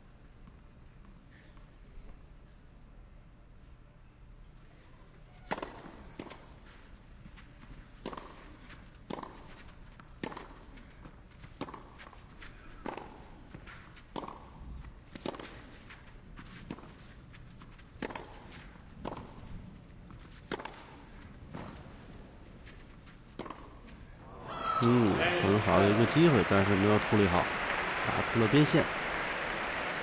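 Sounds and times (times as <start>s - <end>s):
racquet strikes on tennis ball: 5.5s - 6.4s, 8.0s - 8.5s, 9.1s - 9.4s, 10.2s - 10.6s, 11.6s - 12.0s, 12.8s - 13.2s, 14.1s - 14.5s, 15.2s - 15.6s, 18.0s - 19.4s, 20.5s - 21.8s, 23.4s - 23.8s.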